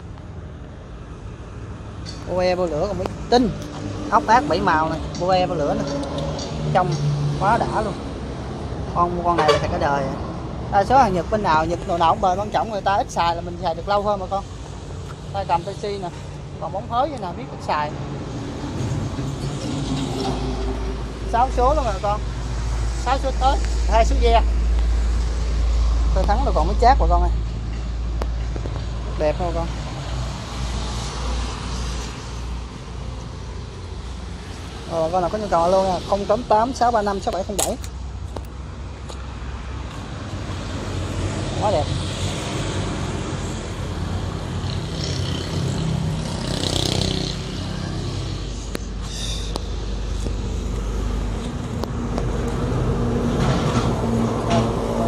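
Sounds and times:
person speaking: 2.2 - 8.1, 8.9 - 14.5, 15.2 - 18.0, 34.8 - 37.9.

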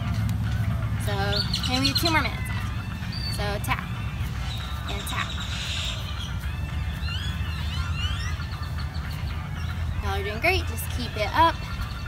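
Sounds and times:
birds chirping: 0.0 - 12.0
steady low rumble: 0.0 - 12.0.

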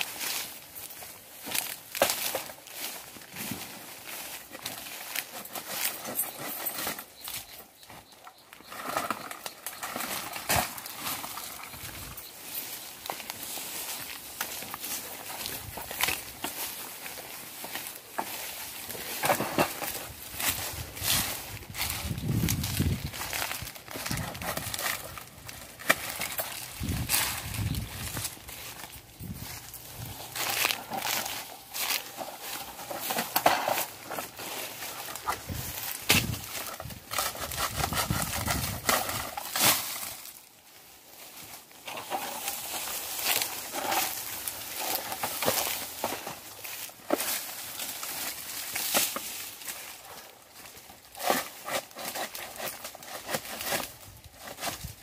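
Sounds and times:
dry fronds and husks rustling: 0.0 - 55.0
sharp cracks and knocks of coconuts: 1.4 - 3.7, 8.2 - 11.8, 21.7 - 27.4, 35.0 - 40.4, 41.9 - 50.0, 50.7 - 55.0.

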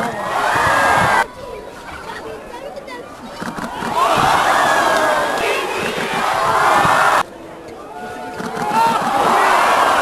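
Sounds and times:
crowd screaming and cheering: 0.0 - 1.3, 3.7 - 10.0.

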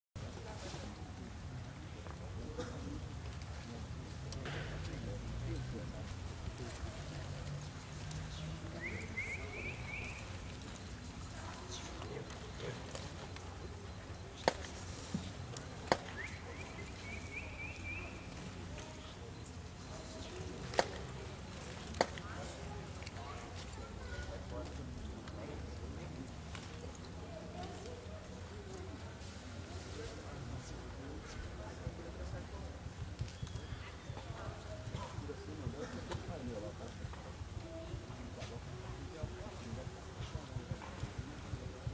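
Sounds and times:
faint distant voices: 0.2 - 41.9.

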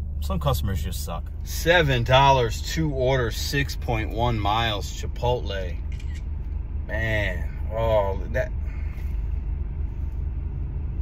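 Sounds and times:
car rumble from inside cabin: 0.0 - 11.0.

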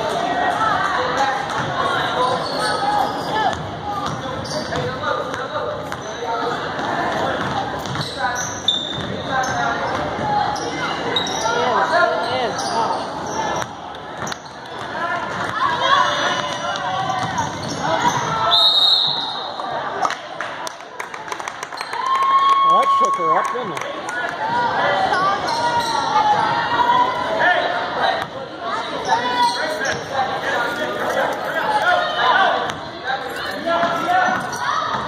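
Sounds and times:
referee's whistle: 18.4 - 19.6
players and spectators shouting: 22.0 - 35.0.

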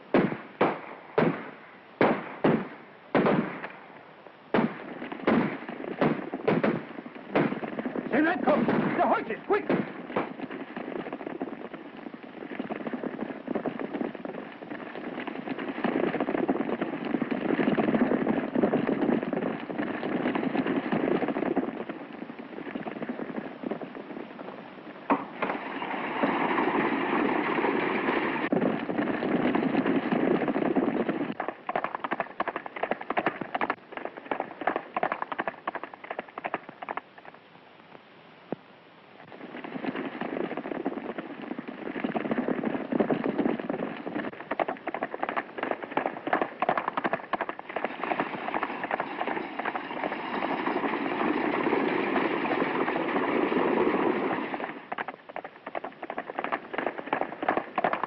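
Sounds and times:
gunshots: 0.0 - 3.8, 4.5 - 11.5
voices: 7.5 - 10.4.

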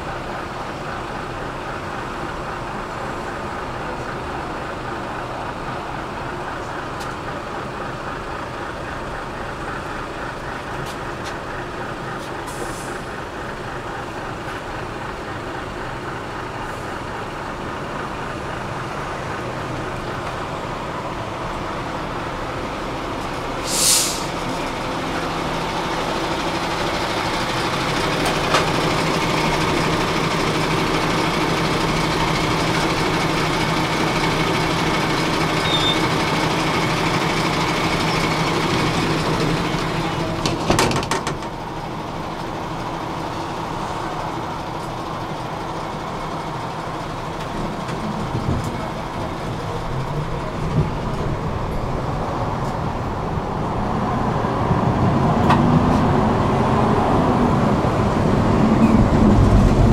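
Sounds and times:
road traffic hum: 0.0 - 59.9
truck diesel engine running: 0.0 - 59.9
air brake hiss: 12.4 - 13.1, 23.6 - 24.4.

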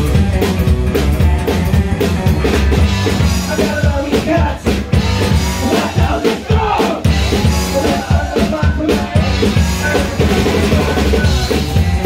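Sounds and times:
driving drum kit: 0.0 - 12.0
electric guitar: 0.0 - 12.0
upright bass: 0.0 - 12.0
person singing: 5.5 - 12.0.

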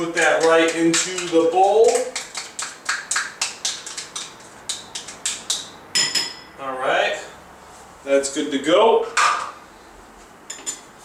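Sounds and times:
kitchenware clinking: 5.9 - 6.6, 10.5 - 10.9
kitchenware scraping: 10.5 - 10.9.

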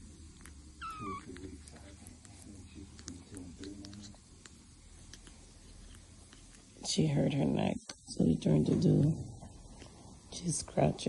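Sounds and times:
young animal squeaking: 0.8 - 1.4.

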